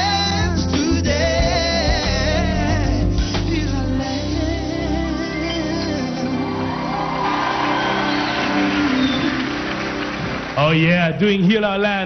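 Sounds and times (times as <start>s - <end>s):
live band song: 0.0s - 12.0s
audience cheering: 6.3s - 11.2s.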